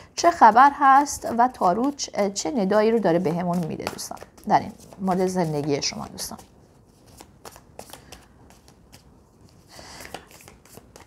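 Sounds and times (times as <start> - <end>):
cards being shuffled by hand: 0.5 - 11.0.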